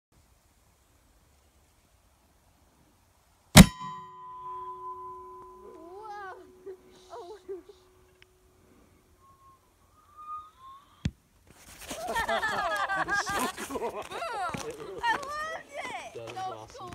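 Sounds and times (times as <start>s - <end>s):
mortar firing bang: 3.6s - 4.1s
metal tube ringing: 3.6s - 11.1s.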